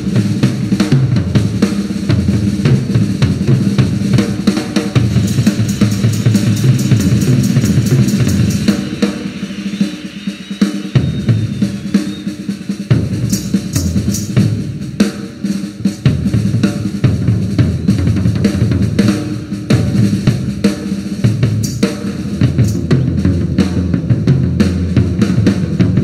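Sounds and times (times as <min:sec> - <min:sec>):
cymbals: 0:00.0 - 0:26.0
drum kit solo: 0:00.0 - 0:26.0
snare strokes: 0:04.5 - 0:15.7, 0:19.0 - 0:23.0.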